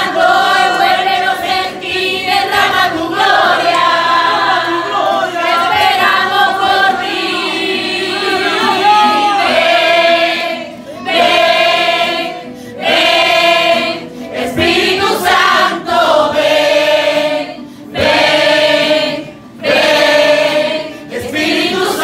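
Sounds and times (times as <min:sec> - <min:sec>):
congregation singing: 0:00.0 - 0:22.0.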